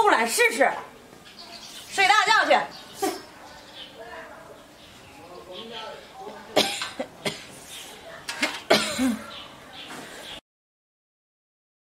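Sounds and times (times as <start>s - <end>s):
woman coughing: 6.6s - 7.5s, 8.7s - 9.3s.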